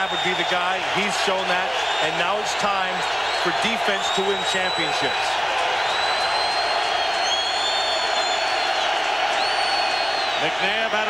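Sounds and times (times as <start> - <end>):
stadium crowd cheering and yelling: 0.0 - 11.0
shrill whistle-like tones: 3.3 - 5.2, 5.8 - 10.7.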